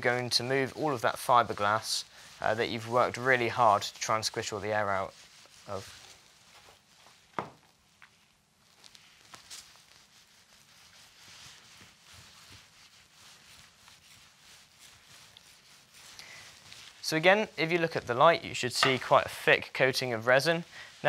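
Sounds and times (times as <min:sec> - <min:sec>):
roller rubbing over fibreglass mat: 0:09.5 - 0:17.9.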